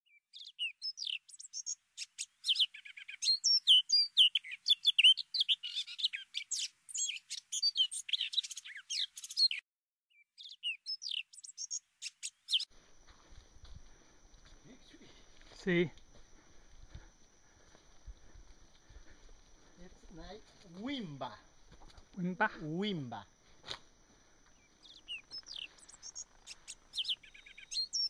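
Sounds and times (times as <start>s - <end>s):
bird chirps and whistles: 0.4s - 11.8s, 24.8s - 28.0s.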